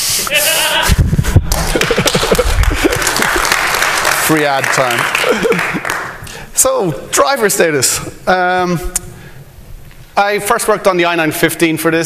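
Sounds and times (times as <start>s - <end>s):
audience clapping: 1.4s - 6.4s
audience laughing: 1.6s - 3.6s, 5.1s - 6.0s.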